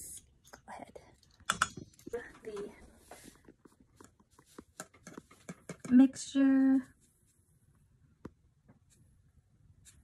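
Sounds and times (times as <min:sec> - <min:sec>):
metal spoon tapping a bowl: 0:01.5 - 0:01.8.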